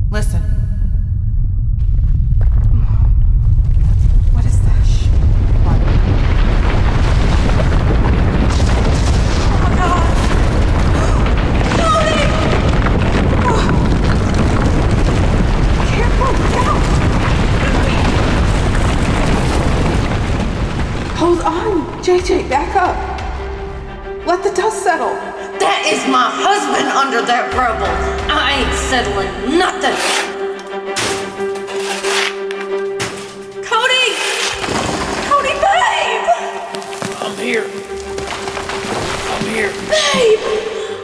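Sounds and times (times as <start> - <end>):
rumbling boom: 0.0 - 24.4.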